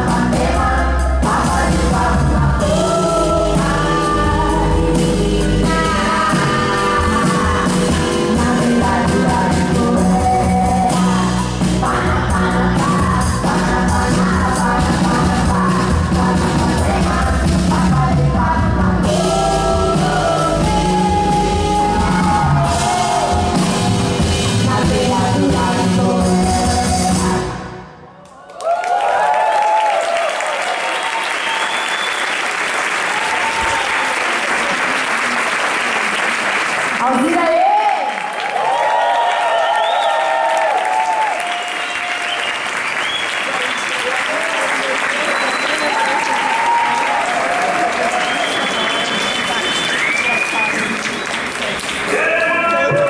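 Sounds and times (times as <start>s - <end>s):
music: 0.0s - 28.2s
audience applauding: 28.2s - 53.0s
whoops and shouts: 28.3s - 31.8s, 37.5s - 42.4s, 45.8s - 48.7s.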